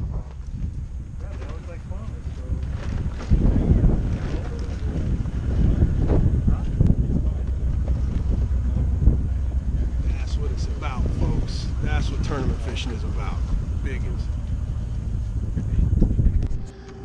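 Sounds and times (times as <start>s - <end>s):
wind buffeting microphone: 0.0s - 16.8s.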